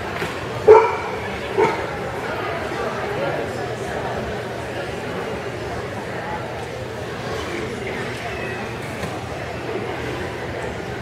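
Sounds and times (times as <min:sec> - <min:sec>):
dog barking: 0:00.7 - 0:01.9.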